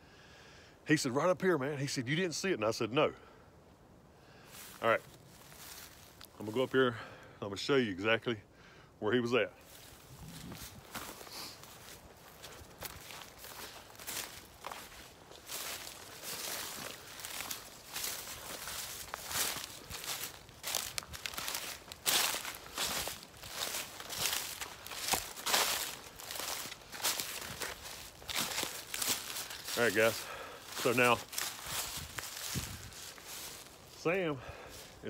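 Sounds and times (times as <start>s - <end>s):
footsteps on dry pine needles: 4.4s - 6.8s, 9.6s - 35.0s.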